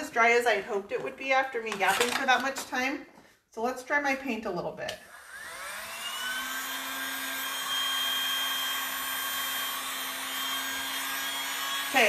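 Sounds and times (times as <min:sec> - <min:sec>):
heat gun motor whine: 0:05.0 - 0:12.0.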